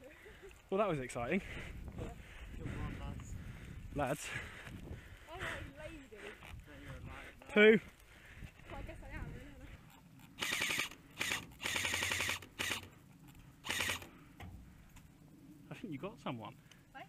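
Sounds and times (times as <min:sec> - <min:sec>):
airsoft rifle full-auto bursts: 0:10.4 - 0:12.9, 0:13.6 - 0:14.1.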